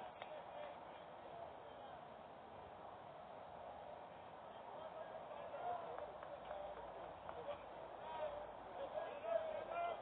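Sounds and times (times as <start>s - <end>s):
faint voices chattering and calling: 0.0s - 10.0s.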